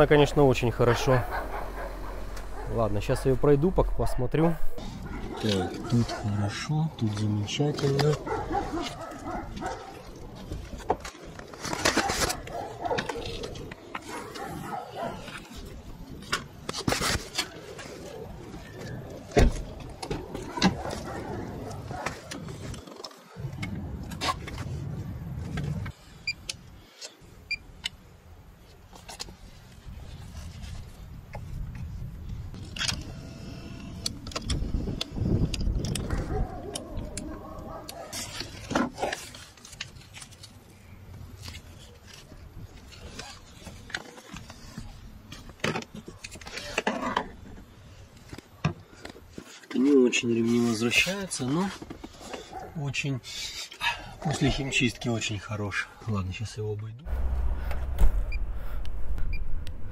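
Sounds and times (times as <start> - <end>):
low handling rumble: 57.0 - 59.9.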